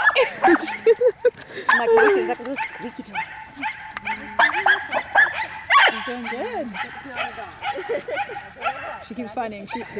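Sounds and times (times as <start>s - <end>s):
dog barking: 0.0s - 1.0s, 1.7s - 9.9s.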